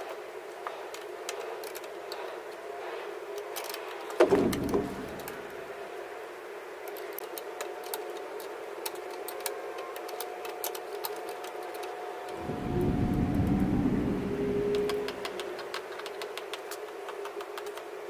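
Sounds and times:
low rumble: 0:12.4 - 0:15.4.

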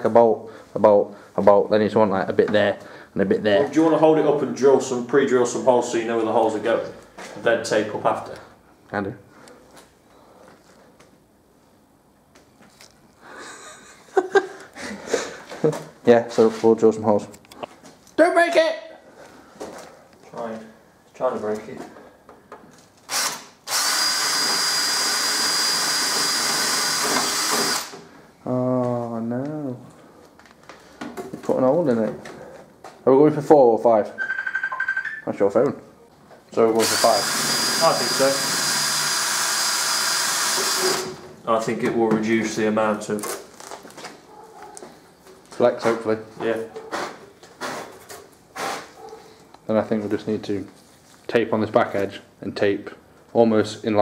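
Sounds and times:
cordless drill whining: 0:23.1 - 0:28.0, 0:36.8 - 0:41.2.

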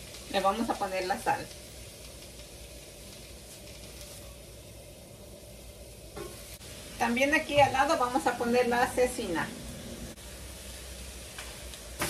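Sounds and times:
food sizzling on griddles: 0:00.0 - 0:12.0.

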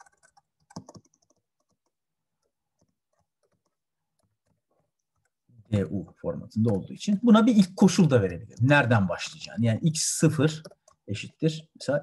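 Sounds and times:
faint keyboard keystrokes: 0:00.0 - 0:05.8.

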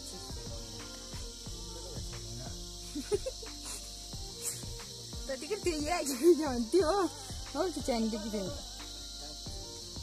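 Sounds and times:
faint music with soft beat: 0:00.0 - 0:10.0
insect chorus chirring: 0:00.0 - 0:10.0.

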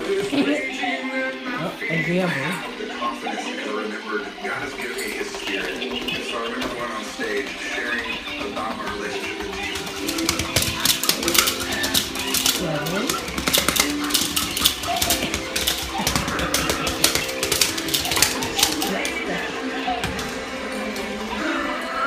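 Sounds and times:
puppies' claws scrabbling on floor: 0:04.6 - 0:21.5
toys knocking about: 0:05.7 - 0:19.4.

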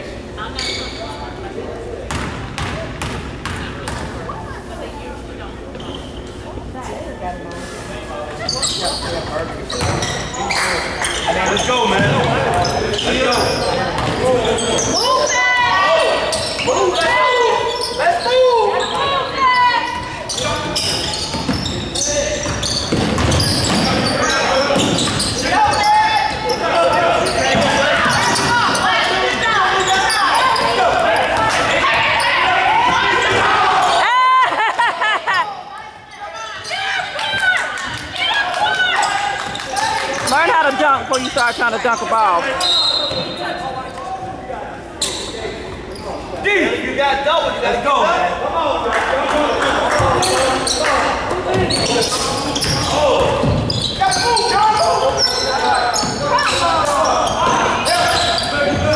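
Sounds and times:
voices of players and spectators: 0:00.0 - 0:58.9
ball bouncing on hardwood court: 0:02.1 - 0:04.1, 0:09.8 - 0:10.1, 0:14.0 - 0:14.3, 0:22.4 - 0:24.0.

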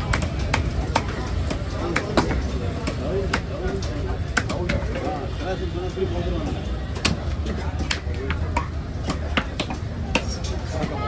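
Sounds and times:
cleaver chopping on wooden block: 0:04.3 - 0:04.8, 0:07.0 - 0:11.0.

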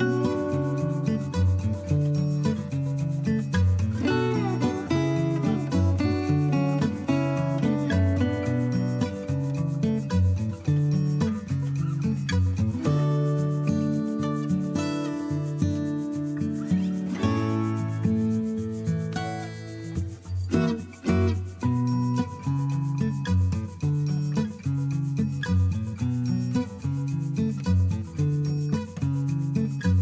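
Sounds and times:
instrumental music: 0:00.0 - 0:30.0.

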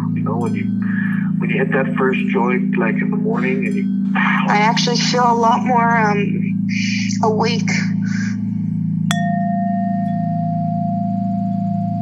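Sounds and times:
low musical drone: 0:00.0 - 0:12.0
chime ringing: 0:09.0 - 0:11.2.

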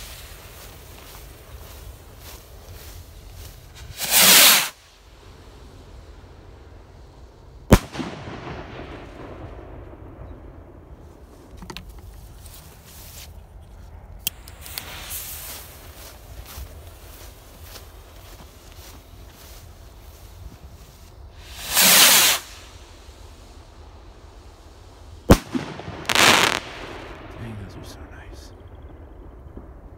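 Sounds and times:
firework stars hissing: 0:00.0 - 0:08.1, 0:14.5 - 0:16.3, 0:20.6 - 0:27.7
firework rocket bang: 0:03.8 - 0:04.8, 0:07.7 - 0:09.6, 0:21.4 - 0:22.7, 0:25.3 - 0:27.4.

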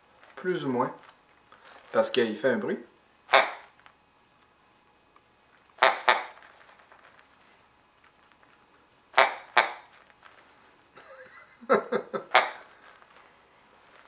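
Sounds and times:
squeezed toy noise: 0:03.3 - 0:03.8, 0:05.8 - 0:07.1, 0:09.2 - 0:10.0.

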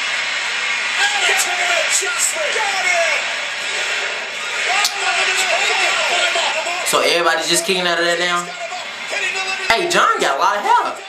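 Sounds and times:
arena crowd roar: 0:00.0 - 0:11.0.

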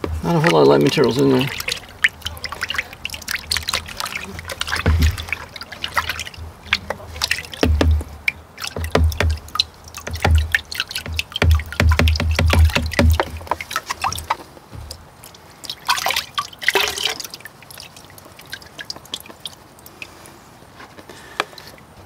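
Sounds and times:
water pouring off: 0:00.0 - 0:20.2
water dripping and trickling: 0:00.0 - 0:22.0
water sloshing in a pan: 0:00.0 - 0:22.0.

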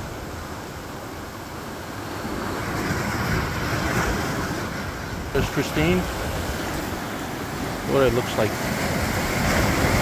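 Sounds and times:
sea waves breaking on rocks: 0:00.0 - 0:10.0.

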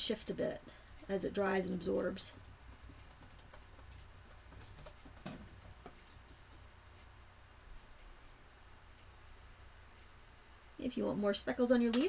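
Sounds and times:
low steady hum: 0:00.0 - 0:12.0
paper and brush taps and clicks: 0:02.7 - 0:06.6.

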